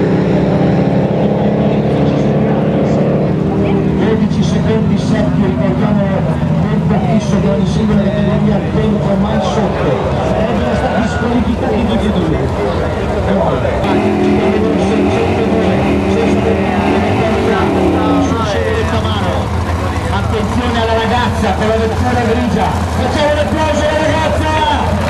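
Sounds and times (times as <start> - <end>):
drag car engine revving: 0.0 - 10.5, 11.4 - 25.0.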